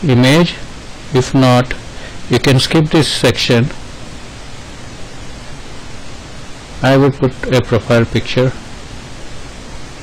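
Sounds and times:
person speaking: 0:00.0 - 0:03.8, 0:06.8 - 0:08.6
steady background hiss: 0:00.0 - 0:10.0.

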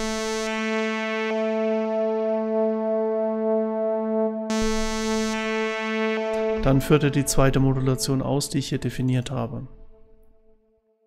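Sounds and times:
synthesizer note with changing filter: 0:00.0 - 0:10.5.

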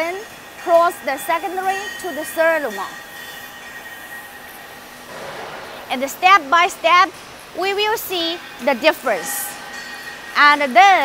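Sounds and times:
workshop machinery running: 0:00.0 - 0:11.0.

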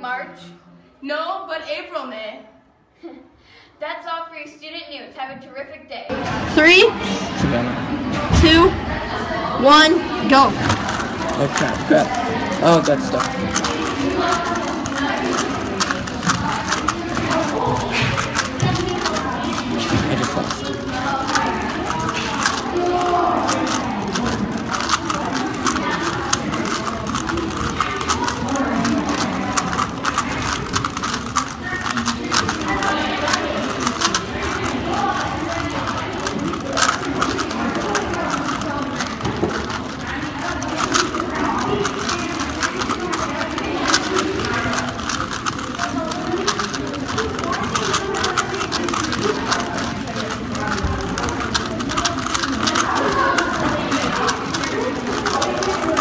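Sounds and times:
murmur of voices: 0:04.7 - 0:56.0
plastic puzzle cubes clicking: 0:09.7 - 0:56.0.

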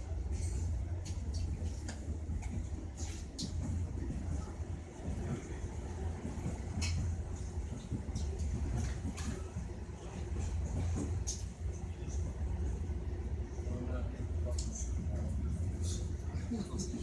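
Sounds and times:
train carriage rumble: 0:00.0 - 0:17.0.

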